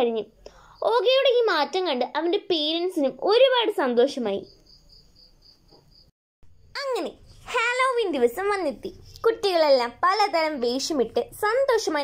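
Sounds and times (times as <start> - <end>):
person speaking: 6.8 - 12.0.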